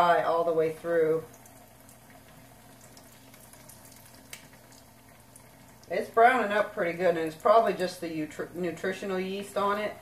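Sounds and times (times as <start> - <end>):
fish frying in hot oil: 0.0 - 8.6.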